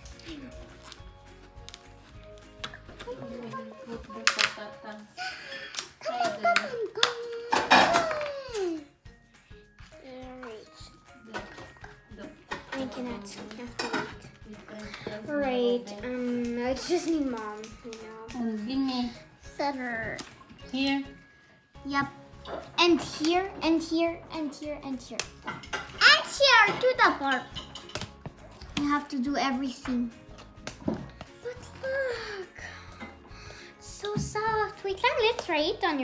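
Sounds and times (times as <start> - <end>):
background music: 0.0 - 36.0
plastic packaging clicks: 4.2 - 4.7.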